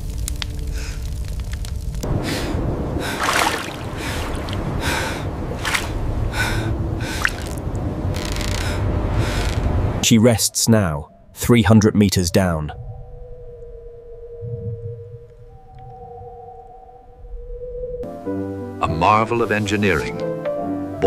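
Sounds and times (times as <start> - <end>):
burning paper crackle: 0.0 - 2.4
low water rumble: 0.0 - 18.0.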